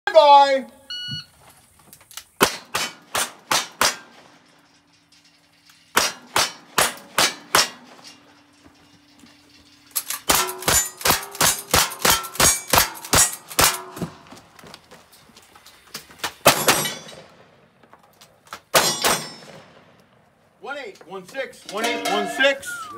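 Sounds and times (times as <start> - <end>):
steel targets ringing: 3.8 - 14.0, 16.6 - 17.2, 18.8 - 19.6, 21.7 - 22.9.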